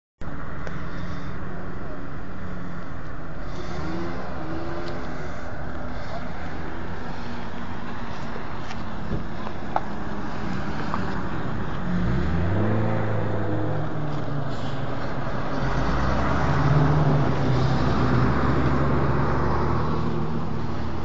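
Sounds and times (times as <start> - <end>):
road noise: 0.2 - 21.0.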